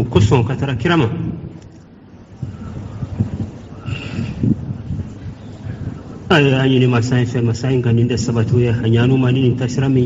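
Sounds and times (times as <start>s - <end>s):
man talking: 0.0s - 1.3s, 6.3s - 10.0s
low rumbling background noise: 0.0s - 10.0s.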